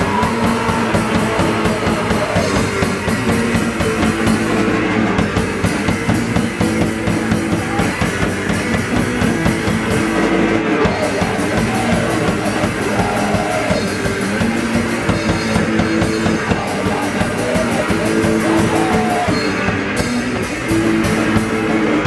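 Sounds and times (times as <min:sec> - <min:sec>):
bass guitar: 0:00.0 - 0:22.0
distorted electric guitar: 0:00.0 - 0:22.0
fast driving drums: 0:00.0 - 0:22.0.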